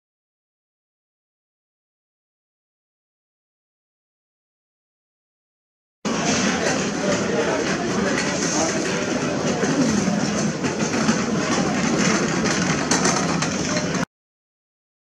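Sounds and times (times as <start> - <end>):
people talking: 6.1 - 14.1.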